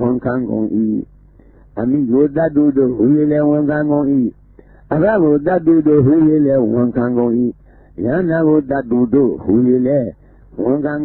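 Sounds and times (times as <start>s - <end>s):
man chanting scripture: 0.0s - 1.1s, 1.8s - 11.0s.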